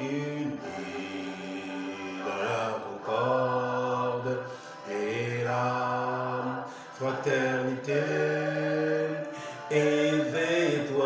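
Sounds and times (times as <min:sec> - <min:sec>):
man singing chant-like notes: 0:00.0 - 0:11.0
breaths: 0:04.4 - 0:04.9, 0:06.7 - 0:07.0, 0:09.2 - 0:09.7.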